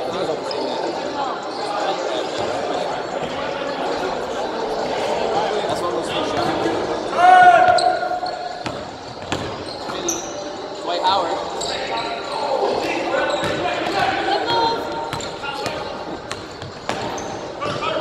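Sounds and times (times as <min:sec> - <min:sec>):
players' voices: 0:00.0 - 0:18.0
sneaker squeaks: 0:05.7 - 0:18.0.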